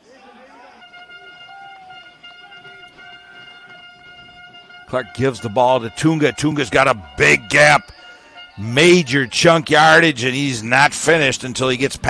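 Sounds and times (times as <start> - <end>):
stadium crowd: 0.0 - 12.0
steady held horn tone: 0.5 - 12.0.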